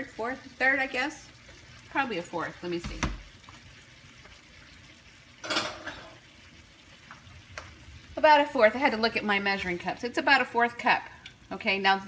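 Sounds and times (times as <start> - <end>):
pork sizzling in a pan: 0.0 - 12.0.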